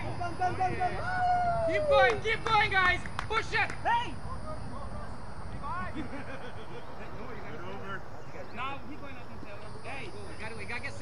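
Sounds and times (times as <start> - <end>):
distant people talking: 0.0 - 11.0
steady low background noise: 0.0 - 11.0.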